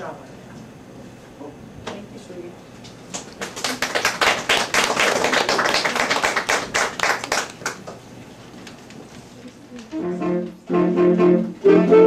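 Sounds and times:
small audience clapping: 3.1s - 8.1s.

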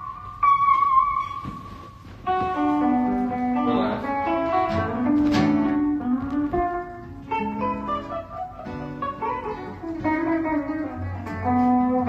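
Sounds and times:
acoustic guitar: 0.0s - 12.0s
electric guitar: 0.0s - 12.0s.

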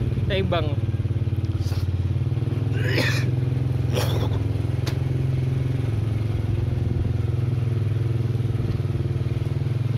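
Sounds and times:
trike engine running steadily: 0.0s - 9.9s.

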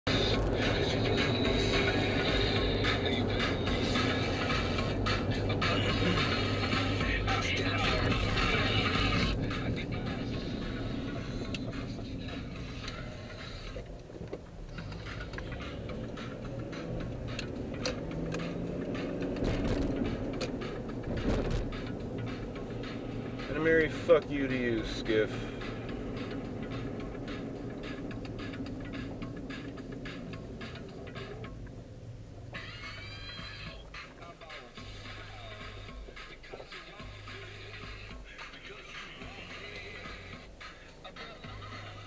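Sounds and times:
car engine and road noise: 0.0s - 42.0s
music with voice on car radio: 0.1s - 42.0s.

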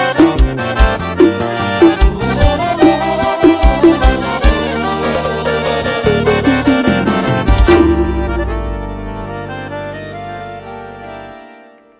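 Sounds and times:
accordion-led folk song: 0.0s - 11.9s.

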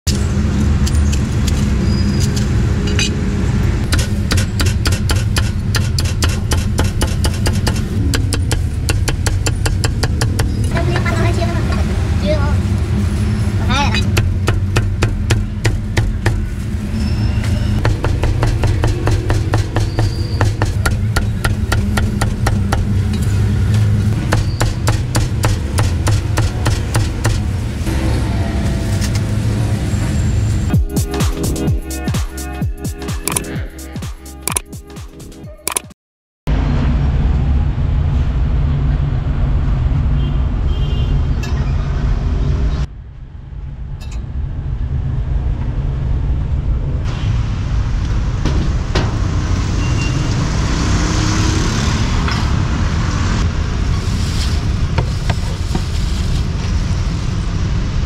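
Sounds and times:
low street traffic rumble: 0.1s - 31.0s, 36.5s - 58.0s
meat cleaver chopping on wood: 3.9s - 10.5s, 24.2s - 27.4s.

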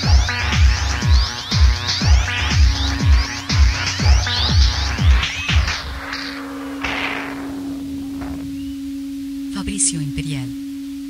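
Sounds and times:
electronic chirps: 0.0s - 11.0s
noise sweep: 3.0s - 9.6s
held synth tone: 4.0s - 11.0s.

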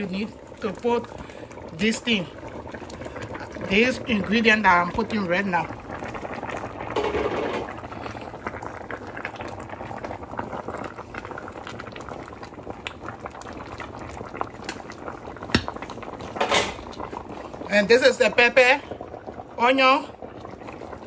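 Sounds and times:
soup bubbling at a boil: 0.0s - 21.0s.

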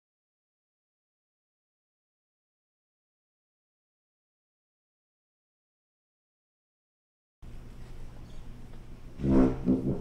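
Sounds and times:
faint low hum: 7.4s - 10.0s
tuba and euphonium quintet: 9.2s - 10.0s.

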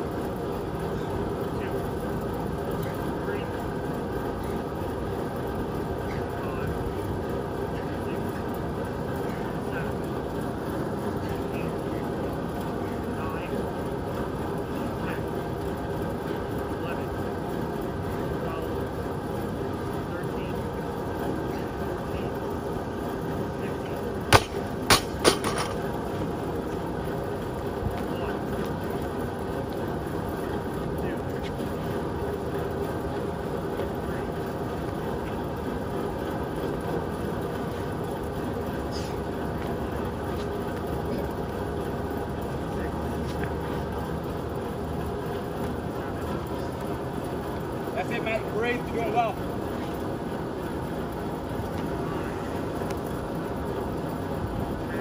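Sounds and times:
drum fan running: 0.0s - 55.0s
barbell dropped on rubber mats: 24.3s - 25.8s.

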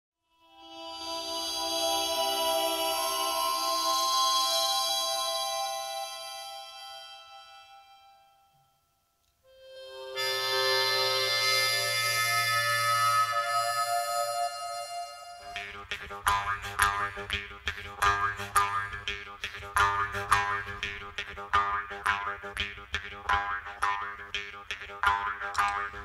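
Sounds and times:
wind instrument chords: 9.5s - 17.4s.

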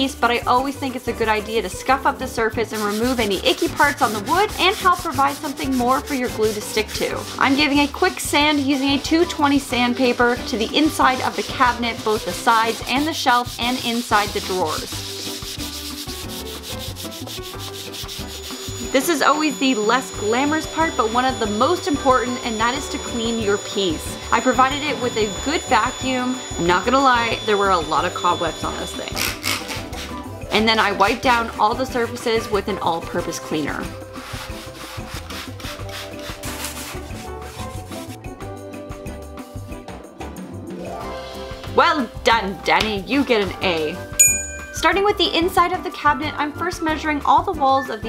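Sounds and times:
background music: 0.0s - 48.0s
sandpaper rubbing on wood: 2.4s - 23.8s, 29.2s - 30.2s, 31.0s - 38.2s.

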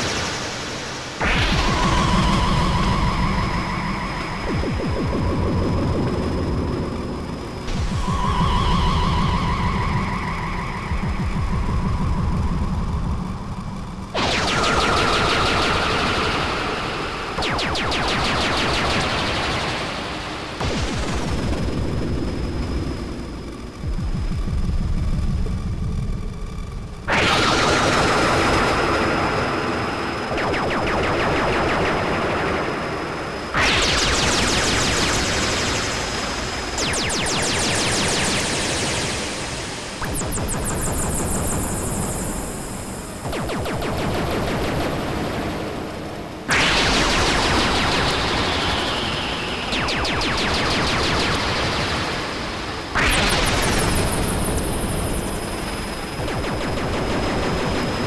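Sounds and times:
rattling synth bass pulse: 4.1s - 15.2s, 20.7s - 27.2s.

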